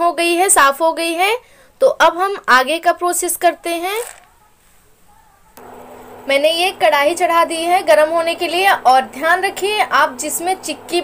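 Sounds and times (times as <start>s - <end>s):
steady low hum: 5.6s - 11.0s.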